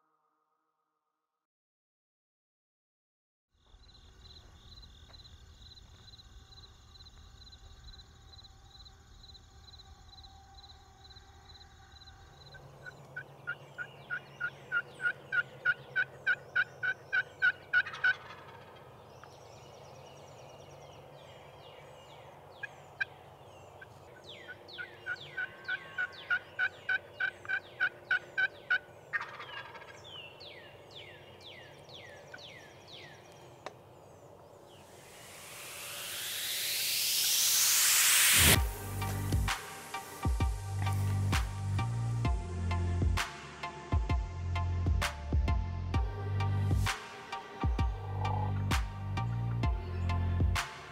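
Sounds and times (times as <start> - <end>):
wild turkey yelping: 12.8 - 18.9, 24.4 - 30.2
loud rising whoosh: 34.8 - 41.6
faint high trill: 34.9 - 38.8.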